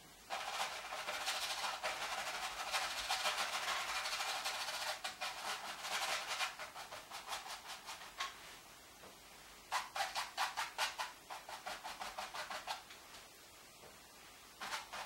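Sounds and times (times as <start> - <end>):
paintbrush scrubbing canvas: 0.3 - 8.6, 9.7 - 12.9, 14.6 - 15.0.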